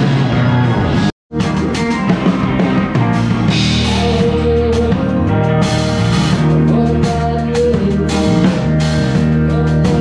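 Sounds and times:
bass: 0.0 - 10.0
drum kit: 0.0 - 10.0
electric guitar: 0.0 - 10.0
keyboards: 0.0 - 10.0.

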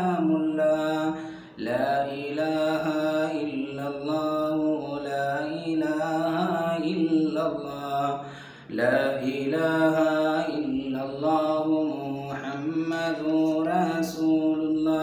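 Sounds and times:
man chanting: 0.0 - 15.0.

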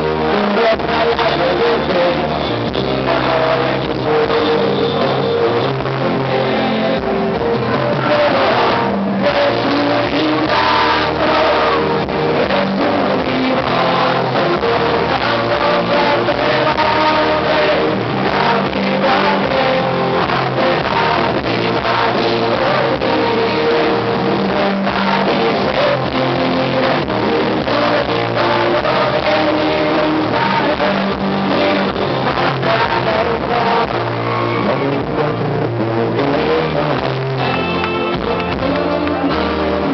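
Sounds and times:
guitar: 0.0 - 39.9
live pop-rock band: 0.0 - 39.9
person singing: 0.0 - 39.9.

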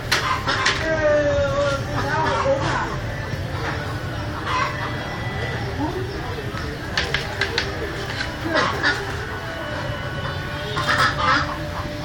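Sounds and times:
chickens clucking: 0.0 - 1.0, 1.6 - 12.0
people's voices: 0.0 - 12.0.

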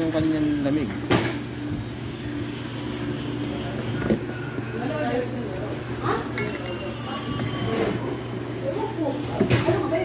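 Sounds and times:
refrigerator humming: 0.0 - 10.0.

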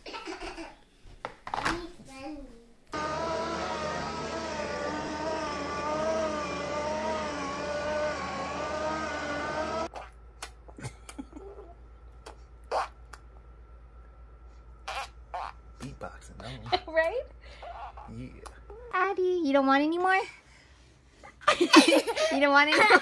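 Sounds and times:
electric motor whine: 2.9 - 9.9.

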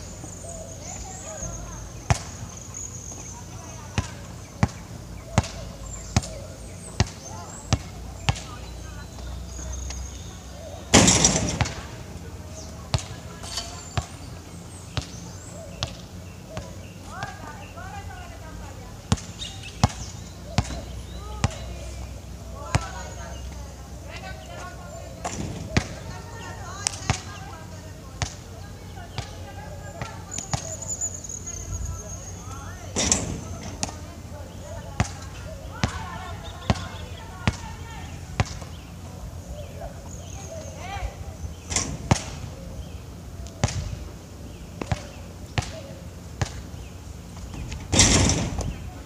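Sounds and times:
basketball bouncing: 3.9 - 8.5, 11.0 - 12.0, 38.4 - 38.7.

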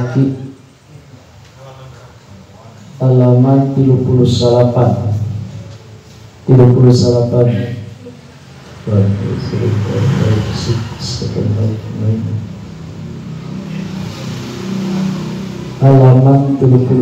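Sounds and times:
man reading aloud in sing-song murmur: 0.0 - 17.0.

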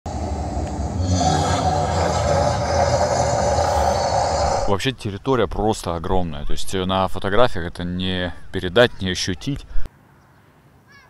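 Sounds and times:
gas flame jets roaring: 0.1 - 4.7.

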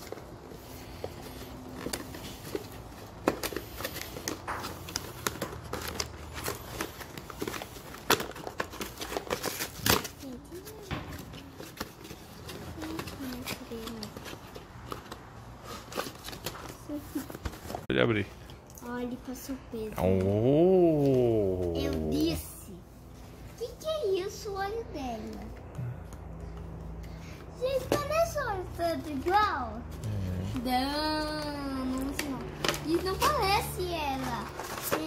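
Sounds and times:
packaging crinkling and rustling: 0.0 - 17.9, 31.1 - 35.0.

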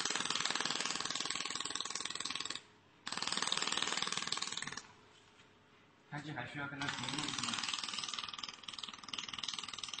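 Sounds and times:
laser welder fast ticking buzz: 6.8 - 10.0.

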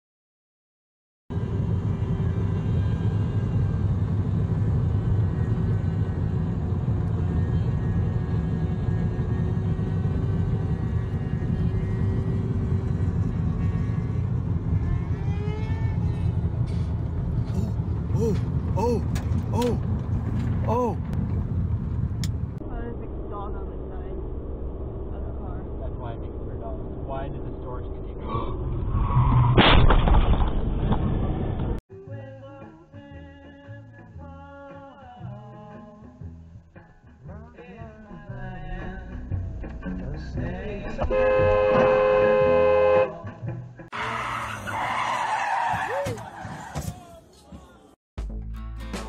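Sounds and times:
car cabin drone: 1.3 - 28.8
car road and engine noise: 1.3 - 31.8, 36.2 - 48.0
people's voices: 17.5 - 19.8, 20.6 - 21.0
car horn blast: 41.0 - 43.2.

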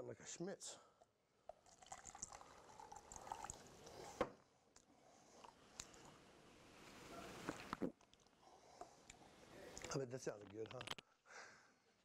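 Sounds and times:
water pouring into a cup: 1.5 - 4.2.

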